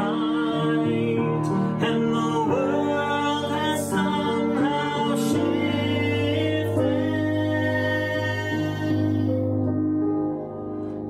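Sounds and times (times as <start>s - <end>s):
piano accompaniment: 0.0s - 11.0s.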